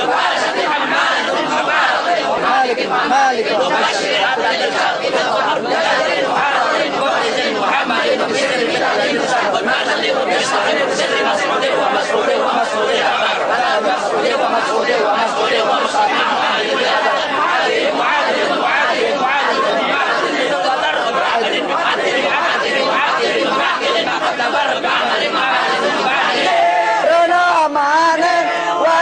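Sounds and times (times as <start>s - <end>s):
men chanting together: 0.0s - 29.0s.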